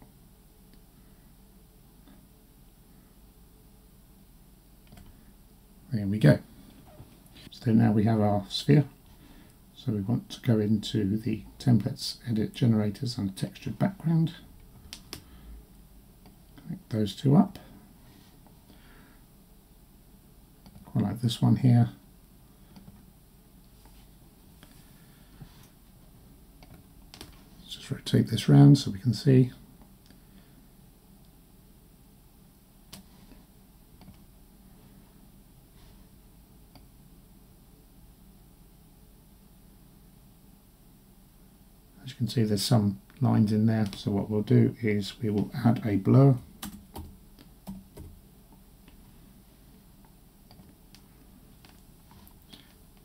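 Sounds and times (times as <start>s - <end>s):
low room hiss: 0.0s - 53.0s
keyboard and mouse clicks: 14.9s - 15.3s, 34.0s - 34.2s, 46.6s - 48.2s
computer mouse clicks: 34.0s - 34.2s.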